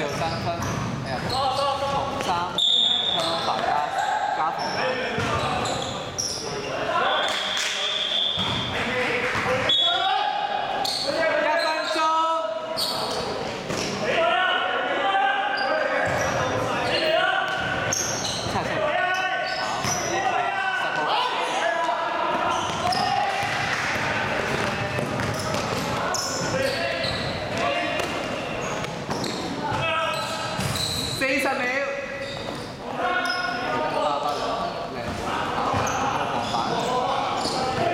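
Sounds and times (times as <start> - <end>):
players calling out: 1.1 - 31.2
basketball bouncing on gym floor: 8.4 - 8.7, 22.6 - 26.2.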